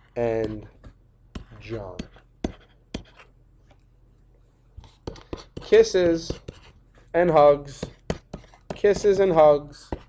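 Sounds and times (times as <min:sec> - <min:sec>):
stylus tapping on drawing tablet: 0:07.8 - 0:09.2.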